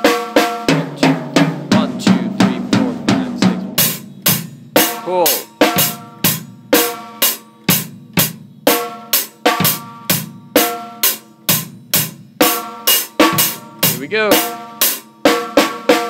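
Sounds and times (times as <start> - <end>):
drum kit beat: 0.0 - 16.0.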